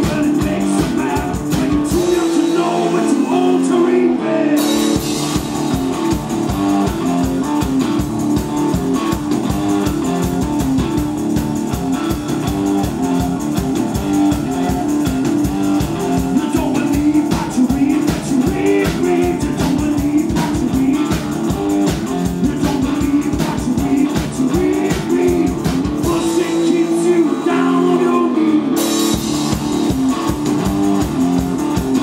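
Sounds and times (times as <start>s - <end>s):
drum kit: 0.0s - 32.0s
electric guitar riff: 0.0s - 32.0s.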